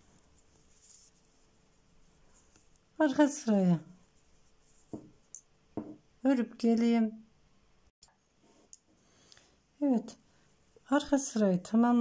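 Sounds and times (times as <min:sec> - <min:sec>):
needle and yarn rubbing: 0:00.0 - 0:03.3, 0:04.0 - 0:05.3.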